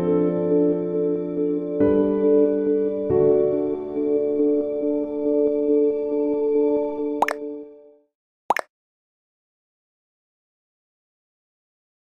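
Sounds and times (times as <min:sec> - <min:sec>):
soft music of held chords: 0:00.0 - 0:08.0.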